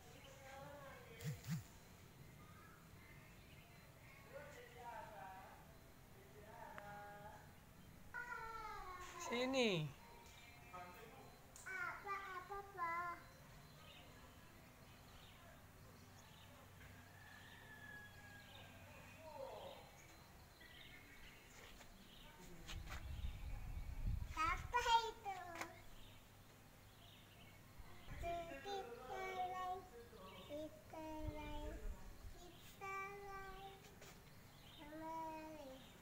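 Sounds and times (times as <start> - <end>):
distant bird chirps: 0.0 - 36.0.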